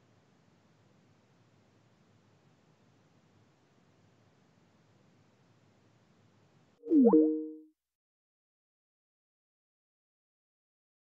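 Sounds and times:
electronic call-ended chime: 6.9 - 7.6.

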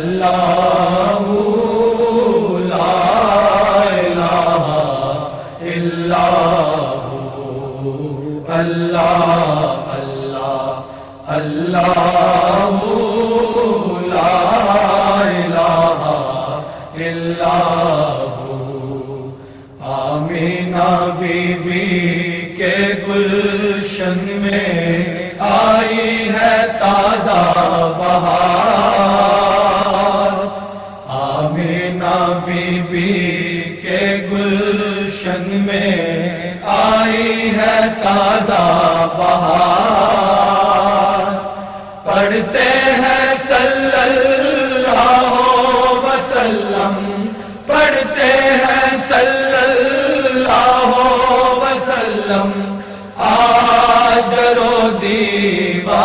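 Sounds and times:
person chanting devotionally: 0.0 - 56.0
breaths: 5.3 - 5.7, 10.8 - 11.3, 16.6 - 17.0, 19.3 - 19.8, 30.6 - 31.1, 41.5 - 42.0, 47.3 - 47.7, 52.6 - 53.2.

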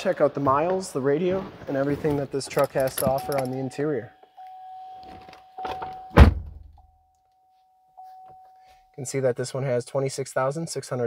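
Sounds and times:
faint steady tone: 3.2 - 9.3
car door shutting: 5.6 - 6.7.

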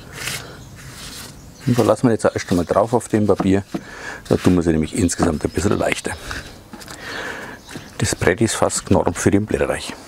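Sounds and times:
hands rubbing baking paper: 0.0 - 6.0.

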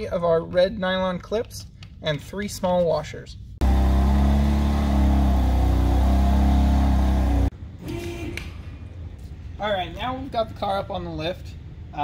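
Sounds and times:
car engine exhaust note: 3.6 - 7.5.

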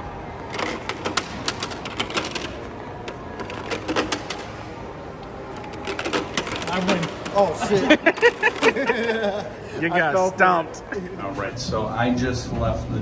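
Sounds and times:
plastic discs clattering in grid: 0.6 - 4.5, 5.6 - 9.1.

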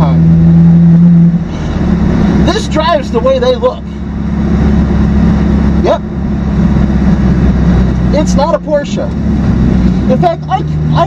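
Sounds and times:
car engine at steady revs: 0.0 - 11.0.

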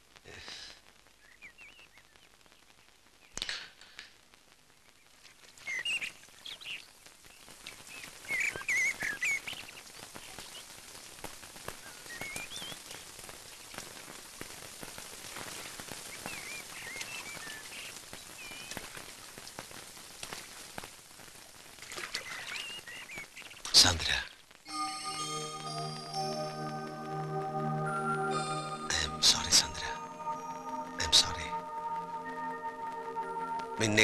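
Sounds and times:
steady rain falling: 0.0 - 34.0
birds chirping: 24.7 - 34.0.

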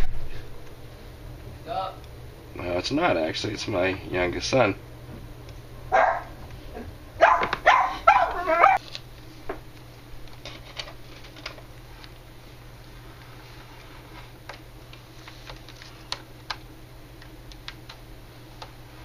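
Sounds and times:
dog barking: 5.9 - 6.4, 7.2 - 8.8.

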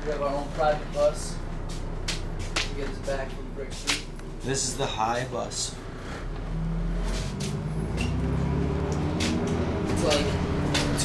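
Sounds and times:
bus engine drone: 0.0 - 11.0.

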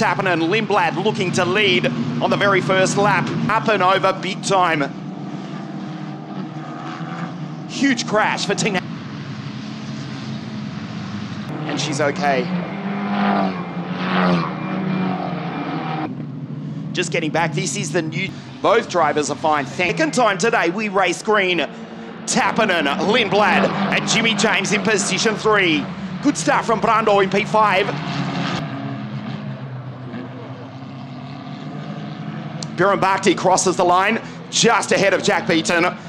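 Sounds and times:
race car engines at part throttle: 0.0 - 36.0.

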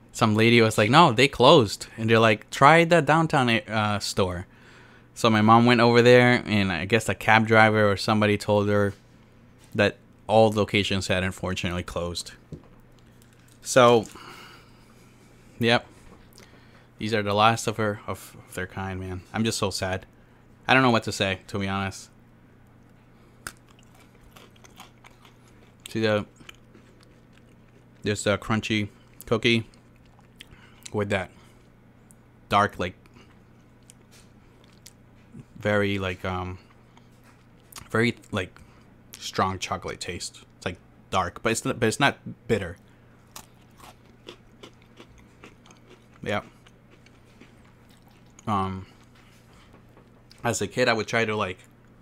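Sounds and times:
person chewing crunchy cookie: 12.8 - 15.3, 22.8 - 28.1, 28.9 - 32.2, 33.0 - 35.6, 42.7 - 50.4.

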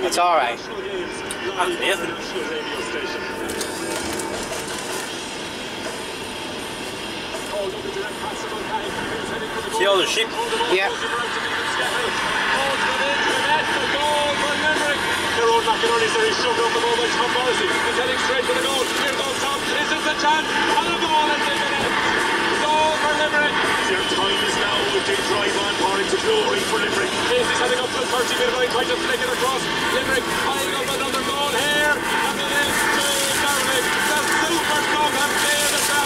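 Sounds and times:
radio voices and music: 0.0 - 36.0.

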